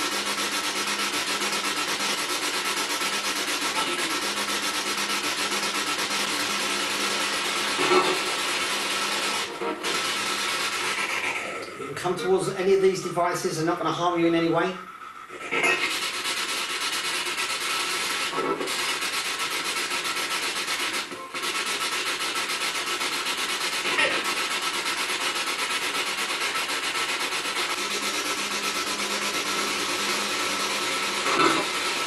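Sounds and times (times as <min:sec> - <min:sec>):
radio static with choppy flutter: 0:00.0 - 0:13.8, 0:15.3 - 0:32.0.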